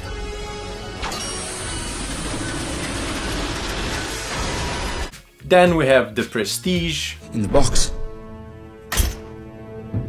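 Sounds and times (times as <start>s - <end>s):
crane machinery rattling and rumbling: 1.1s - 5.1s.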